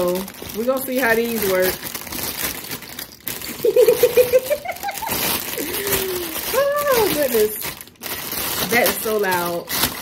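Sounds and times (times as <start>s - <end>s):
plastic bag crinkling: 0.0s - 10.0s
woman laughing: 3.6s - 6.4s.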